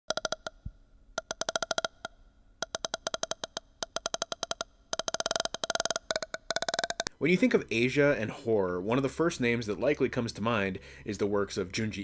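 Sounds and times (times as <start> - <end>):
pitched electronic clicks: 0.1 - 7.2.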